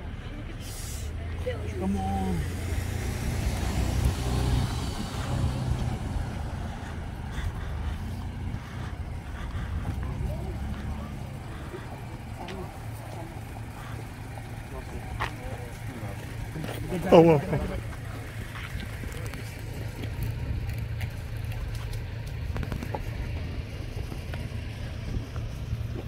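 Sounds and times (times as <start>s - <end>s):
vehicle engines rumbling past: 0.0s - 26.0s.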